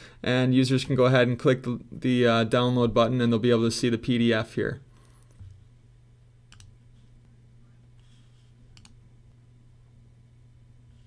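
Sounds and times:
faint low hum: 0.0 - 11.0
computer mouse clicks: 6.5 - 6.8, 8.7 - 9.0.

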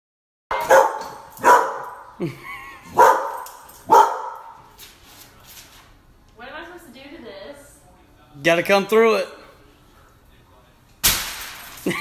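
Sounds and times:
dog barking: 0.5 - 2.2, 2.9 - 4.7.

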